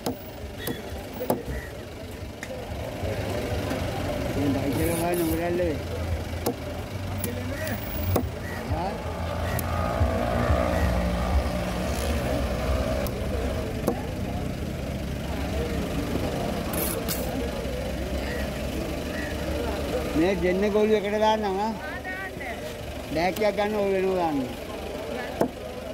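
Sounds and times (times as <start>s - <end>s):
engine running: 0.0s - 25.9s.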